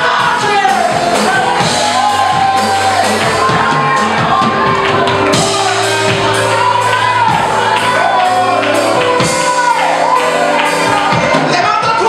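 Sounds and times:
congregation shouting and cheering: 0:00.0 - 0:12.0
worship music with steady beat: 0:00.0 - 0:12.0.

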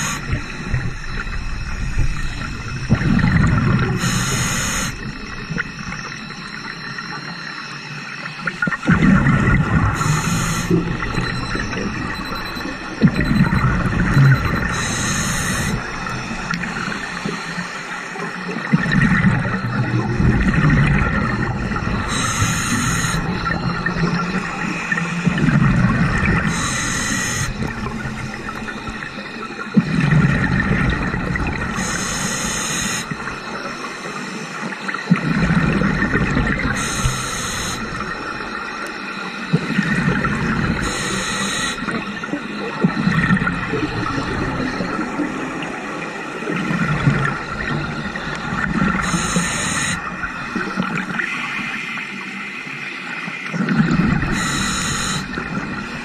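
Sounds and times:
exhaust bubbles rushing: 0:00.0 - 0:04.0, 0:08.5 - 0:14.9, 0:18.7 - 0:22.2, 0:35.1 - 0:36.8
regulator inhale hiss: 0:04.0 - 0:05.0, 0:10.0 - 0:10.8, 0:14.7 - 0:15.8, 0:22.1 - 0:23.3, 0:26.5 - 0:27.5, 0:31.8 - 0:33.1, 0:36.8 - 0:38.0, 0:40.8 - 0:42.0, 0:49.0 - 0:50.1, 0:54.3 - 0:55.4.

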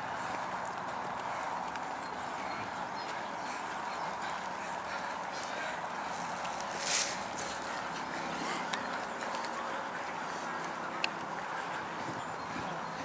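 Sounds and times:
runners' footfalls on grass: 0:00.0 - 0:13.0
spectators calling: 0:00.0 - 0:13.0.

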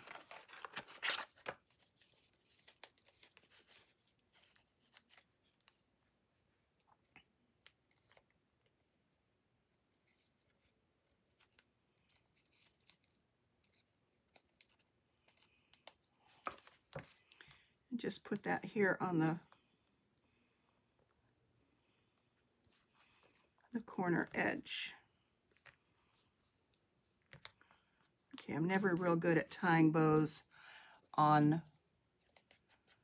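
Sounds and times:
small clicks and rustles of hands: 0:11.3 - 0:17.6.

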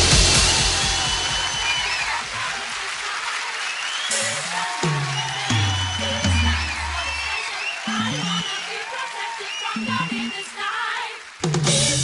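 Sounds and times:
audience clapping: 0:00.0 - 0:12.0
electronic dance music: 0:00.0 - 0:12.0.

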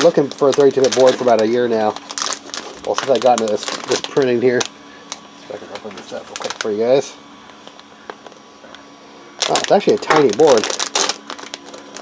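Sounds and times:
foil bag crinkling: 0:00.0 - 0:12.0.

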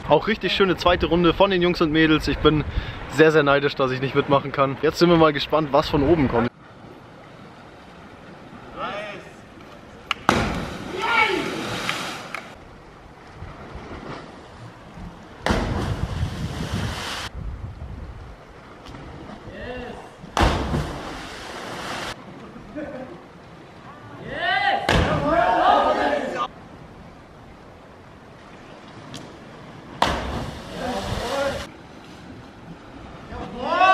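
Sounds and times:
divers splashing into sea: 0:10.0 - 0:12.6, 0:13.2 - 0:17.3, 0:20.3 - 0:22.2, 0:29.0 - 0:31.7
distant shouts and cheers: 0:10.8 - 0:11.6, 0:23.9 - 0:26.5, 0:33.3 - 0:33.9.

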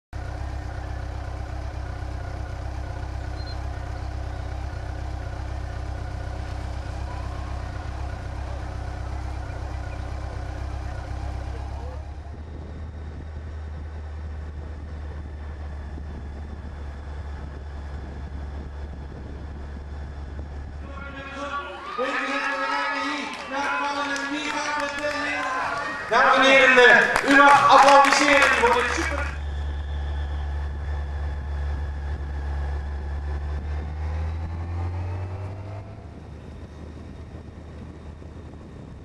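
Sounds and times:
motor vehicle engines humming: 0:00.1 - 0:39.0.

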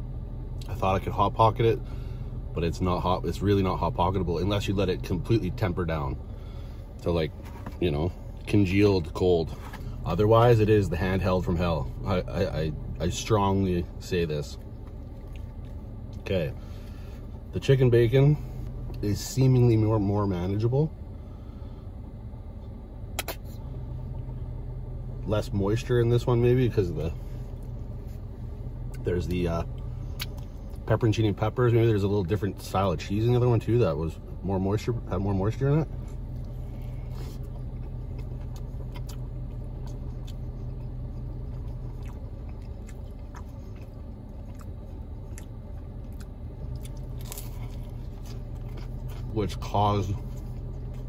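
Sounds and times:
car cabin rumble: 0:00.0 - 0:51.0
steady low hum: 0:00.0 - 0:51.0
wet mouth smacks and clicks: 0:23.2 - 0:23.5
biting into sandwich: 0:36.0 - 0:49.6.

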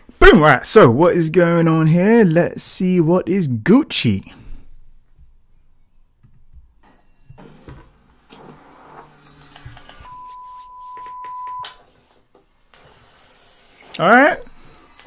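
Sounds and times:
steady beep-like tone: 0:10.0 - 0:11.8.

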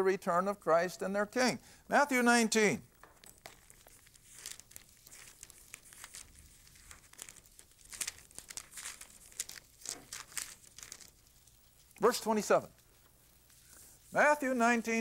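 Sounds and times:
thin book pages rustling: 0:02.9 - 0:15.0.

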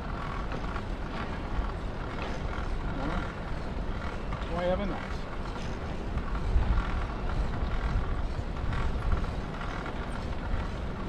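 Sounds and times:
bicycle tyres on pavement: 0:00.0 - 0:11.0
wind noise on microphone: 0:05.3 - 0:11.0.

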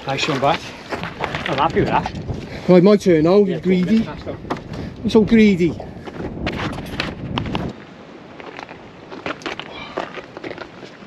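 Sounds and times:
footsteps over rocks: 0:00.0 - 0:11.0
wind on microphone: 0:00.6 - 0:11.0.

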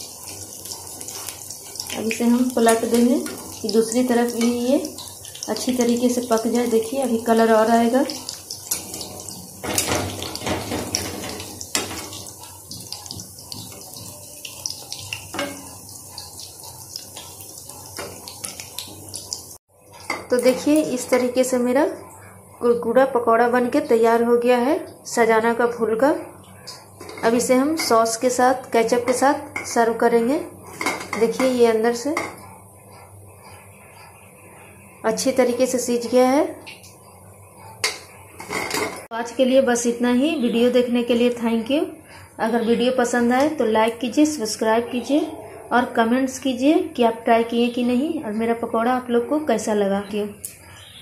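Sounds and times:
oil sizzling and crackling: 0:00.0 - 0:21.5.

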